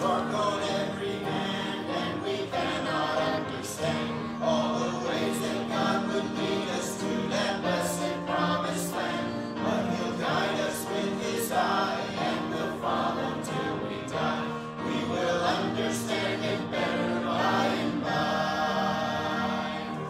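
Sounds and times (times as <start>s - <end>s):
group singing a hymn: 0.0s - 20.0s.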